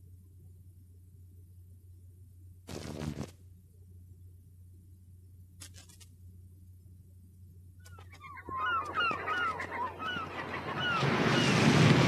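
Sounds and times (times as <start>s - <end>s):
gulls crying: 8.0s - 12.0s.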